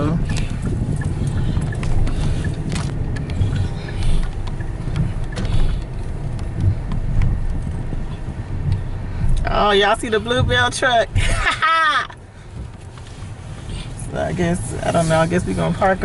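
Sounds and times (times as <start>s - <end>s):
faint clicks and rattles: 0.0s - 10.8s
engine and tyre rumble: 0.0s - 16.0s.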